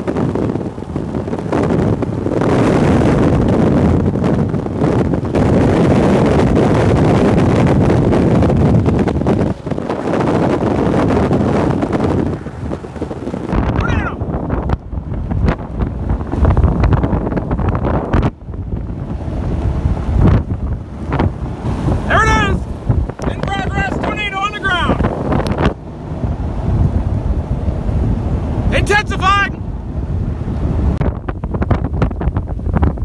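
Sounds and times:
strong wind buffeting microphone: 0:00.0 - 0:33.0
person calling out: 0:13.8 - 0:14.3, 0:22.1 - 0:22.7, 0:23.3 - 0:25.0, 0:28.7 - 0:29.6.

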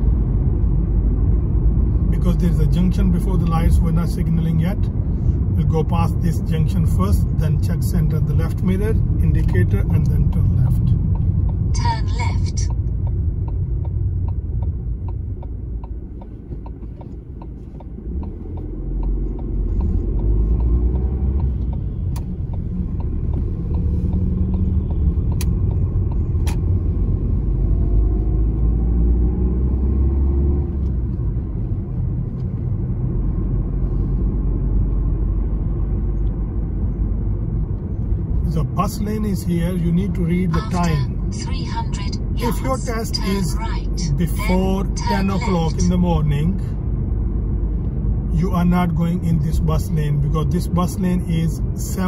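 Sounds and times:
car engine and road rumble: 0:00.0 - 0:52.0.

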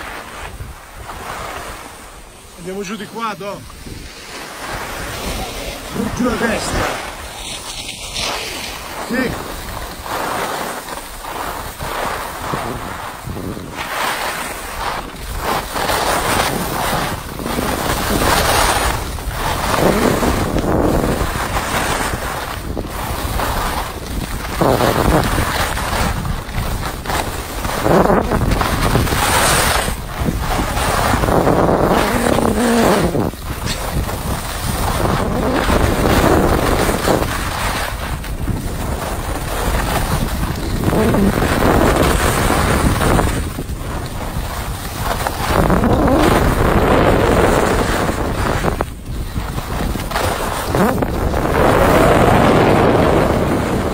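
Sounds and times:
skis hissing on snow: 0:00.0 - 0:53.9
wind rushing over microphone: 0:00.0 - 0:53.9.

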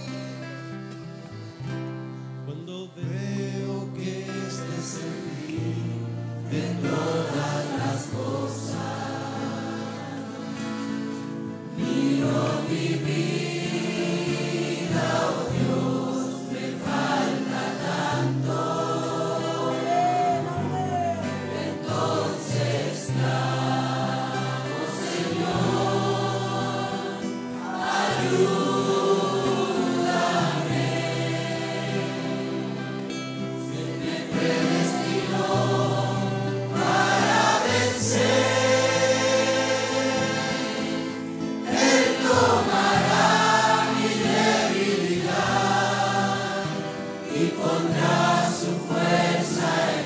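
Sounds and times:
congregation singing: 0:00.0 - 0:50.0.

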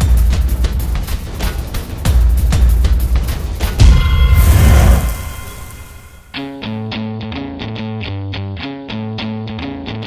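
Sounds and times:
cinematic boom: 0:03.8 - 0:06.4
whoosh: 0:03.8 - 0:06.4.

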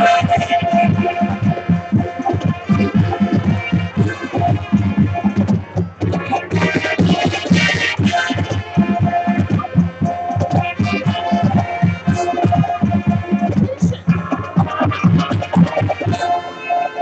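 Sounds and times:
drumline beat: 0:00.0 - 0:16.3.

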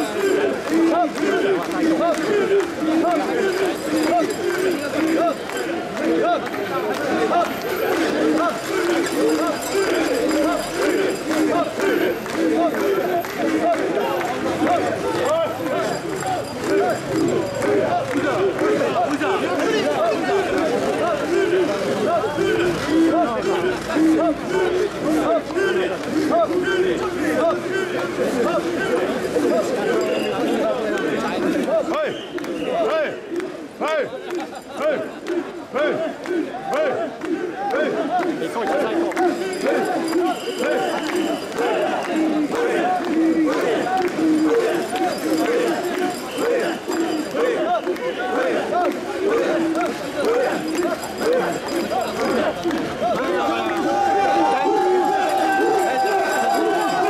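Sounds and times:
crowd of men chanting: 0:00.0 - 0:57.0.

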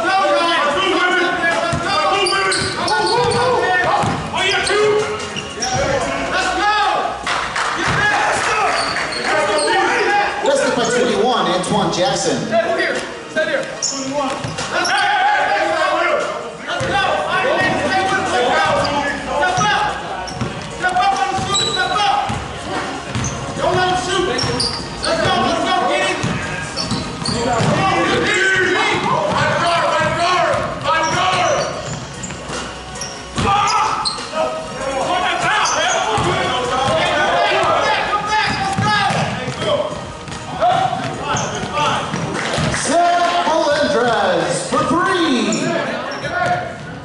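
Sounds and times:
players' voices: 0:00.0 - 0:47.0
basketball bouncing on hardwood floor: 0:02.6 - 0:04.3, 0:23.1 - 0:23.8, 0:26.2 - 0:27.8.

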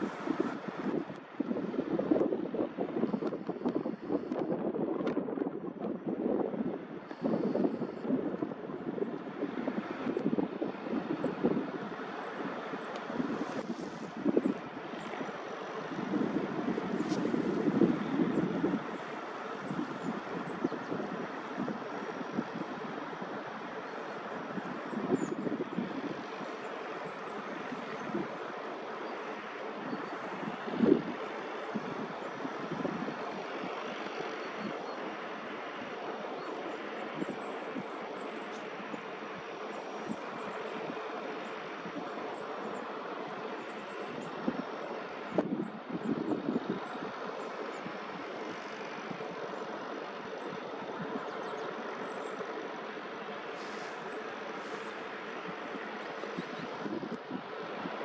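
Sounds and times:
rushing wind: 0:00.0 - 0:58.0
wind buffeting microphone: 0:00.0 - 0:58.0.

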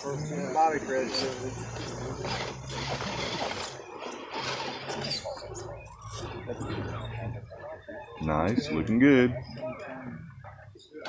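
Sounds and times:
faint chatter of onlookers: 0:00.0 - 0:11.0
toy car electric motor whining: 0:00.4 - 0:07.3.

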